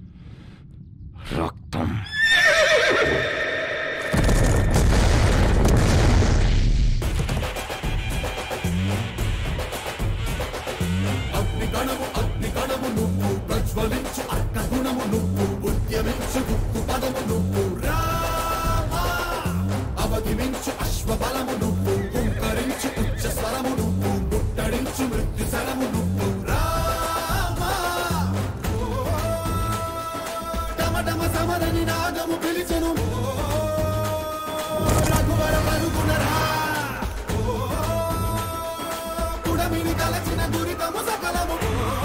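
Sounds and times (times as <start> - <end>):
horse whinnying: 2.0 - 4.2, 22.0 - 23.3
action film score: 3.4 - 42.0
deep explosion rumble: 4.1 - 7.3.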